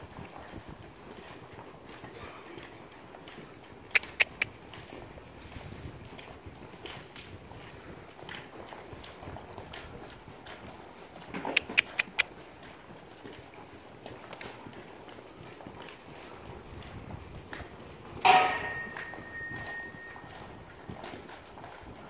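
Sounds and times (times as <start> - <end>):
horse hoofbeats on sand: 0.0 - 22.0
sharp clicks: 4.0 - 4.5, 11.6 - 12.3.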